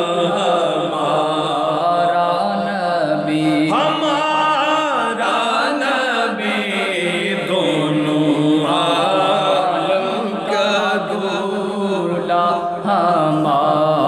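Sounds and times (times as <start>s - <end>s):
man chanting unaccompanied: 0.0s - 14.0s.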